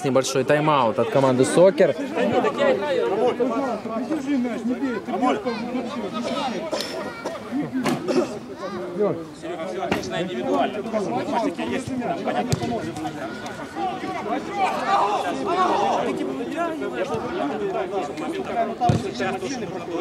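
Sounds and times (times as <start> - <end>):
indistinct chatter of voices: 0.0 - 20.0.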